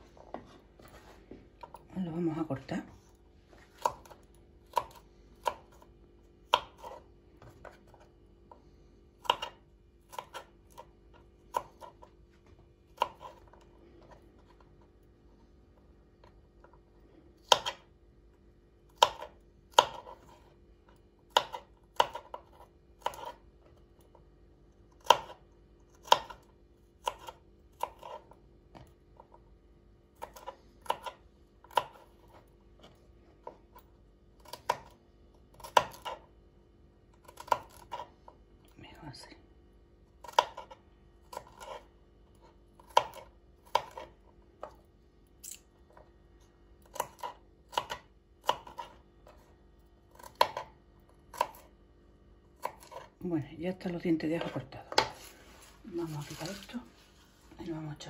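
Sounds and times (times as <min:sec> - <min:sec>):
knife slicing garlic on board: 0:03.8 - 0:05.9, 0:06.5 - 0:08.1, 0:09.2 - 0:12.1, 0:12.9 - 0:14.6, 0:17.4 - 0:17.9, 0:18.9 - 0:20.6, 0:21.3 - 0:24.2, 0:24.9 - 0:29.4, 0:30.1 - 0:33.8, 0:34.4 - 0:36.3, 0:37.1 - 0:38.4, 0:40.2 - 0:44.8, 0:46.8 - 0:49.5, 0:50.1 - 0:51.7, 0:52.6 - 0:53.2, 0:54.4 - 0:55.3.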